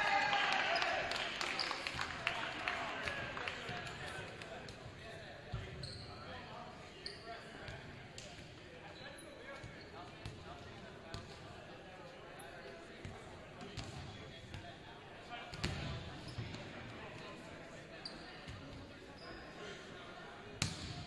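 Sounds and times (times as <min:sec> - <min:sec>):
indistinct chatter in a gymnasium: 0:00.0 - 0:21.0.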